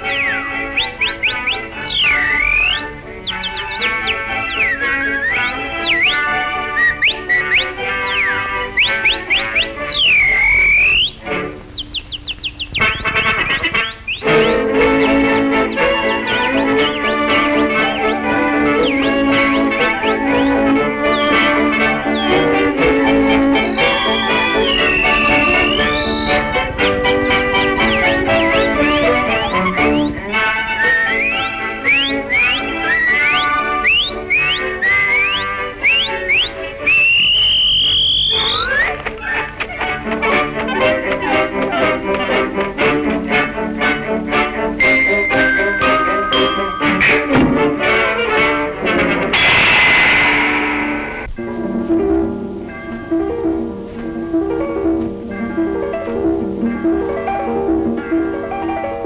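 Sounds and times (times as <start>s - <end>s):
short rising chirps: 0.0s - 12.8s, 15.7s - 40.4s
whistled glide: 0.0s - 51.4s
busy instrumental cartoon music: 0.0s - 59.0s.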